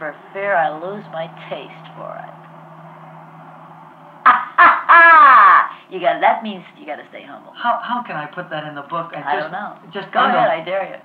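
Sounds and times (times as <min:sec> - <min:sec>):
loud laughter: 0:04.2 - 0:05.8.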